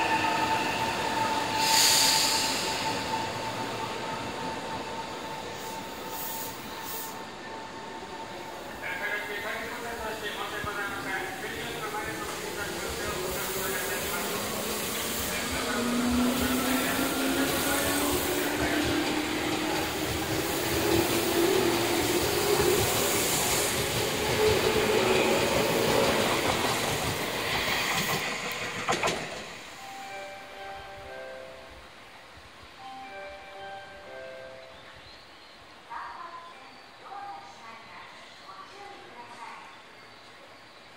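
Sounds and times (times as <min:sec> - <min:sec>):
wheels rolling on rail: 0:12.2 - 0:29.8.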